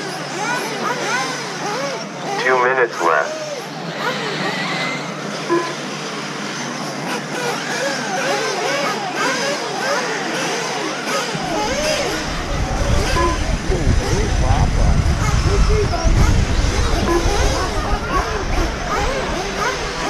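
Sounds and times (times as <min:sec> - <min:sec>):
electric motors whining: 0:00.0 - 0:20.0
low rumble: 0:11.4 - 0:20.0.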